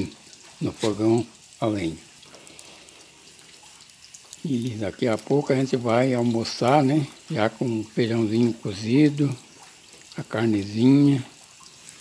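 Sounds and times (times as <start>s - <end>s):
firewood hissing in a stove: 0.0s - 12.0s.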